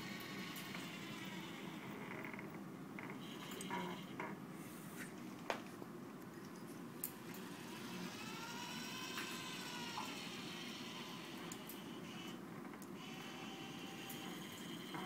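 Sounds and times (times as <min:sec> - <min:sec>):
robot arm servo motors whining: 0:07.2 - 0:12.4, 0:13.0 - 0:15.0.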